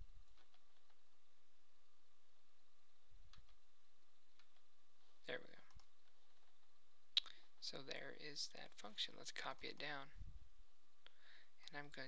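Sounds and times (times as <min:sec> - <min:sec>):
computer mouse clicks: 0:03.3 - 0:03.6, 0:04.3 - 0:04.7, 0:05.5 - 0:07.4.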